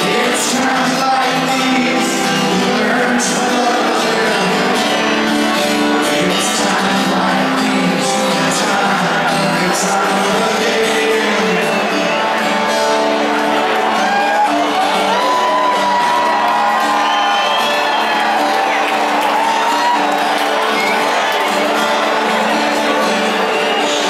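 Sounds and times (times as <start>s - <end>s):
acoustic guitars: 0.0s - 24.0s
crowd whooping and shouting: 0.0s - 24.0s
live rock band through pa: 0.0s - 24.0s.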